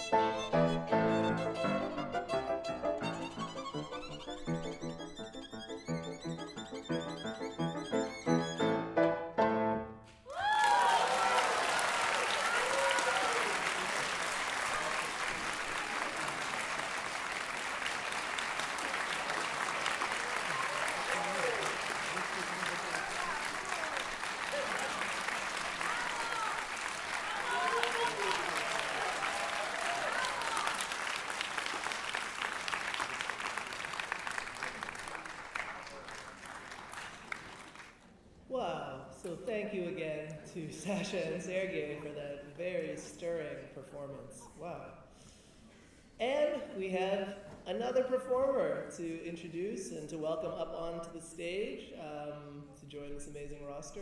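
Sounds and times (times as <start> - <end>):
violin and piano piece: 0.0 - 9.8
shouts and cheers: 10.3 - 13.9, 20.2 - 21.8, 22.6 - 31.0
audience applause: 10.3 - 38.0.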